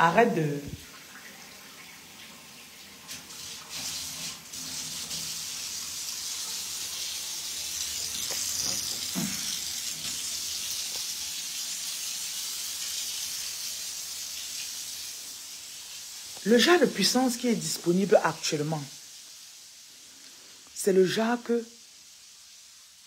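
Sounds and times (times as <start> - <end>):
steady hiss: 3.1 - 23.0.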